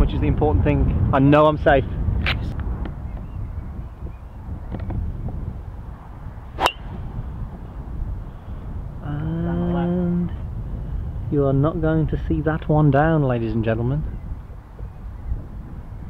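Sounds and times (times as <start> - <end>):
wind on microphone: 0.0 - 16.0
golf club striking ball: 6.6 - 7.1.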